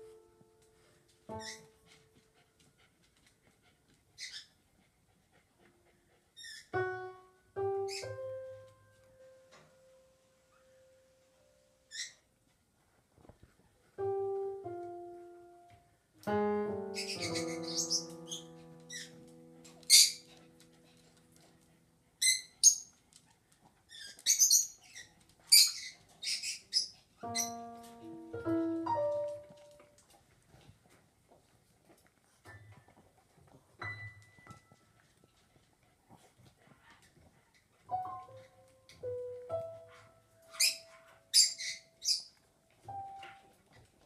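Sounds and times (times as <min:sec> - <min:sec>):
high-pitched chirping squeaks: 0:01.3 - 0:01.7, 0:06.4 - 0:06.8, 0:07.8 - 0:08.2, 0:11.9 - 0:12.2, 0:16.7 - 0:20.4, 0:22.2 - 0:23.0, 0:23.9 - 0:28.6, 0:40.5 - 0:42.4
electronic keyboard notes: 0:14.0 - 0:19.6.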